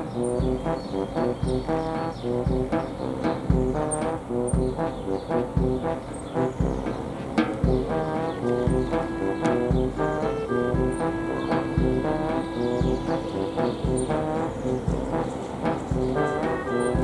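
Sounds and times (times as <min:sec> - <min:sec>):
comic silent-film music: 0:00.0 - 0:17.0.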